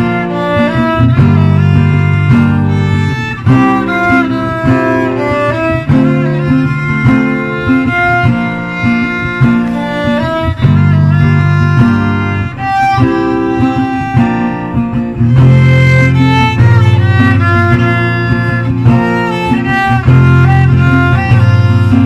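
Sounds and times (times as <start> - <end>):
steady low bass notes: 0.0 - 14.5, 15.1 - 22.0
bowed violin melody: 0.0 - 22.0.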